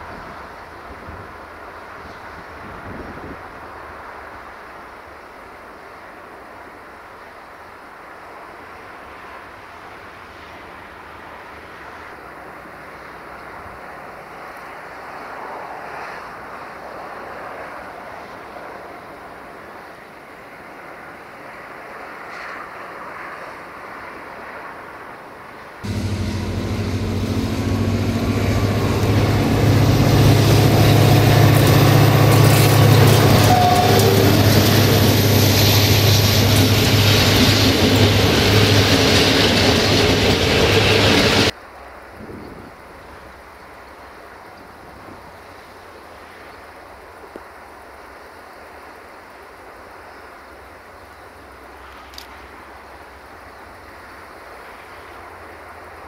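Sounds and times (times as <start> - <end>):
wheel and rail noise: 9.1 - 41.6
high thin whine: 25.8 - 41.5
locomotive engine: 25.8 - 41.5.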